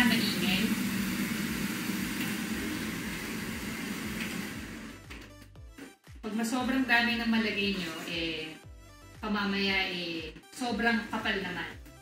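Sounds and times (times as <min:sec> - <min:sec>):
exhaust fan whirring: 0:00.0 - 0:05.1.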